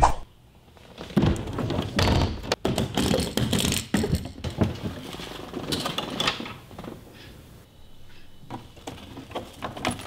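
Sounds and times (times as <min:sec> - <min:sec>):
suitcase scraping: 0:04.4 - 0:07.0.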